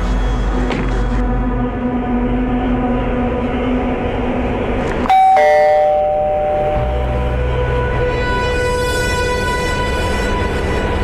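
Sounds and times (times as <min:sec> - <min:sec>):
dark suspense drone: 0:00.0 - 0:11.0
loud bell-like chime: 0:05.1 - 0:07.3.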